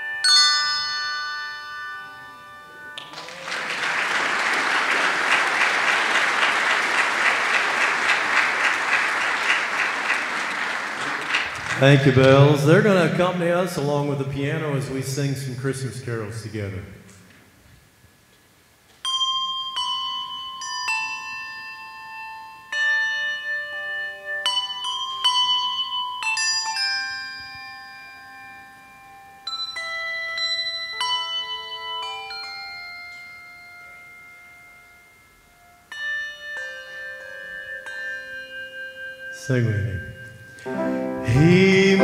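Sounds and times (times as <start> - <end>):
handbell choir ringing: 0.0 - 12.2, 19.0 - 42.0.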